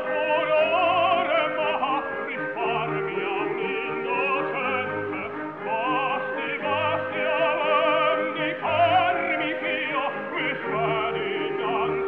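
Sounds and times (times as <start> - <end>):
opera orchestra: 0.0 - 12.0
operatic voices singing: 0.0 - 12.0.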